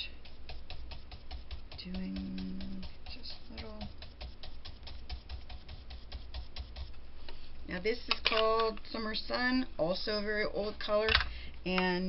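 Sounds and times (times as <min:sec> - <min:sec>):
brush tapping on cardstock: 0:00.0 - 0:09.5.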